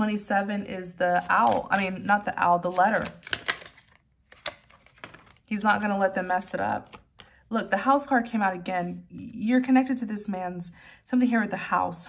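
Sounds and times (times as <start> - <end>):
cards clicking and snapping: 3.0 - 5.4.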